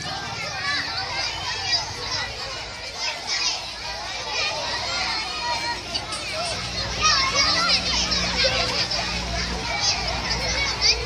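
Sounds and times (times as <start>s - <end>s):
children playing and shouting: 0.0s - 11.0s.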